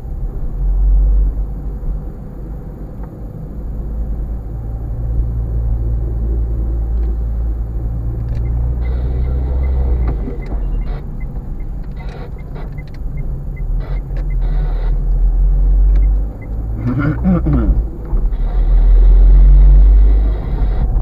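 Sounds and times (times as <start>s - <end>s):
engine and tyre rumble: 0.0s - 21.0s
turn indicator ticking: 8.1s - 18.3s.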